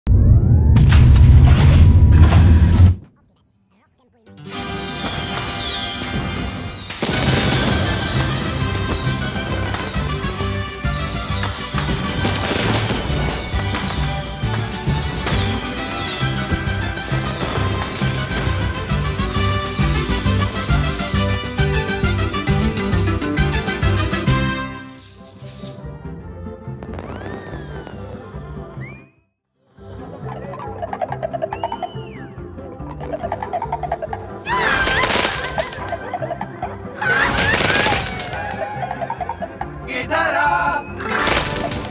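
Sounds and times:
firework falling whistle: 4.5s - 14.2s, 14.9s - 19.4s, 26.8s - 28.2s
slot game music: 7.0s - 26.1s
gliding whistle-like tones: 31.4s - 32.4s.

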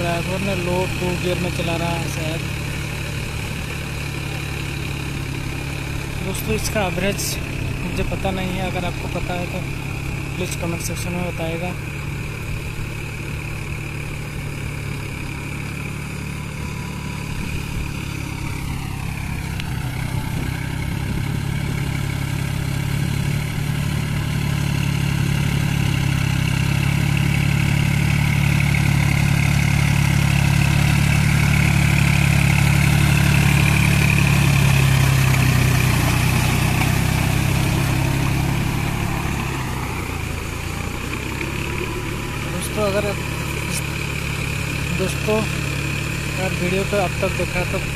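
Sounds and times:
tractor diesel engine under load: 0.0s - 47.9s.

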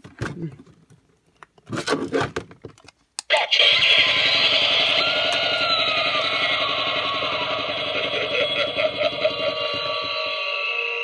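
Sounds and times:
spooky music from small speaker: 3.3s - 11.0s.

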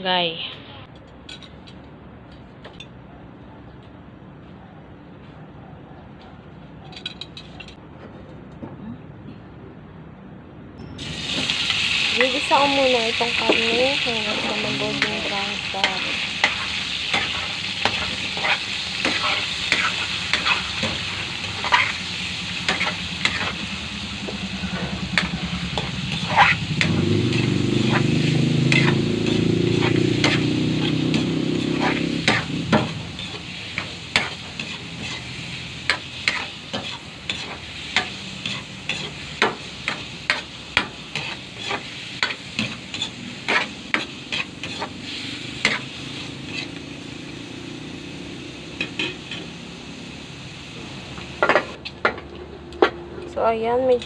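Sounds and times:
meat sizzling in oil: 11.0s - 51.8s
spatula scraping and knocking pan: 22.6s - 45.0s.

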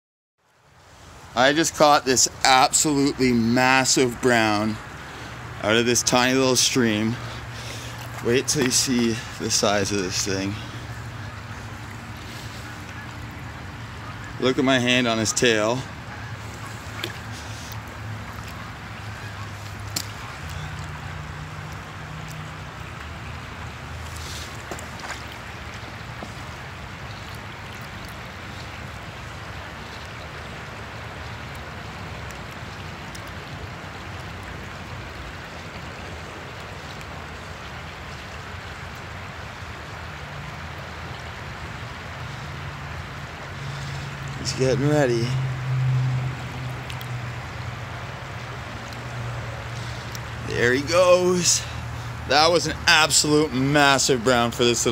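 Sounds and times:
creek water flowing: 0.4s - 54.9s.

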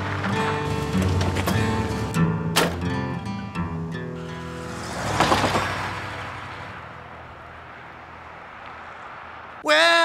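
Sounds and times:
van driving past: 0.0s - 9.6s.

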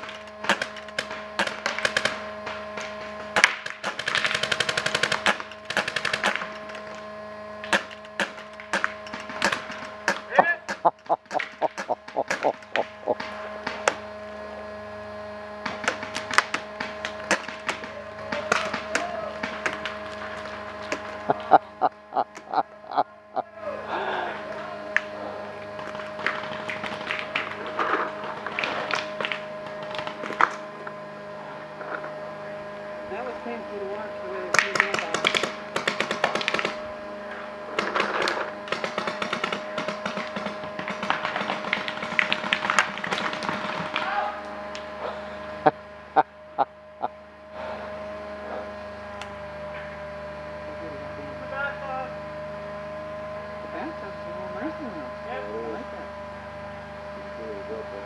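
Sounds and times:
paintball markers firing: 0.0s - 7.0s, 7.6s - 14.0s, 15.6s - 21.1s, 34.5s - 36.8s, 37.7s - 44.1s.

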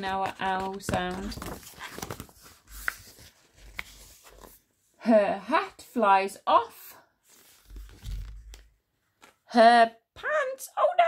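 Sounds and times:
book pages rustling: 0.0s - 4.8s, 7.2s - 9.4s.

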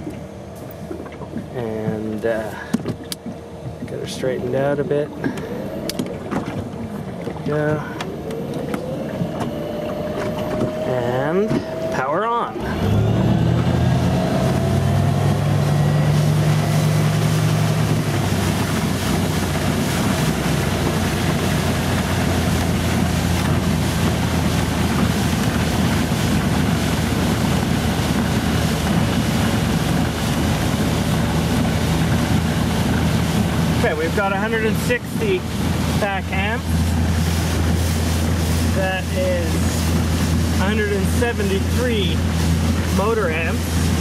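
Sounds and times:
low electric drive drone: 0.0s - 44.0s
water rushing along hull: 0.0s - 44.0s.

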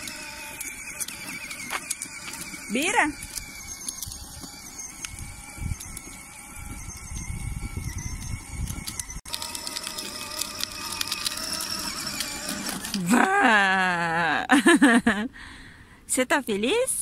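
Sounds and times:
rapid fine clicking: 0.0s - 13.1s
toy motorcycle motor whine: 0.0s - 13.5s
plastic wheels rolling on asphalt: 0.0s - 15.0s.

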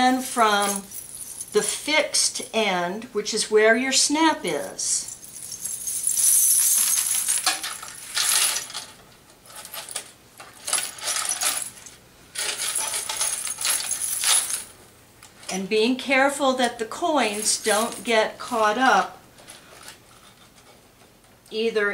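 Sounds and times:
coins jingling on scarf: 0.4s - 1.9s, 4.5s - 14.7s, 17.3s - 18.2s.

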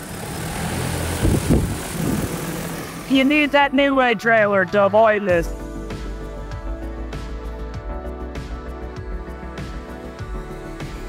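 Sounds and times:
machine hum and rushing hiss: 0.0s - 3.3s.

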